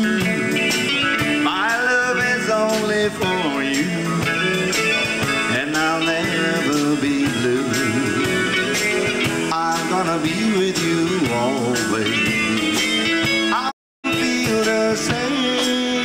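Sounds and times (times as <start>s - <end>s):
bending guitar lead line: 0.0s - 16.0s
live country rock band: 0.0s - 16.0s.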